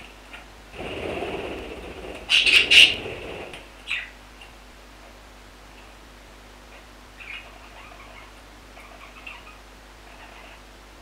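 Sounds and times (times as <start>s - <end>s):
budgerigars chattering: 1.4s - 4.1s.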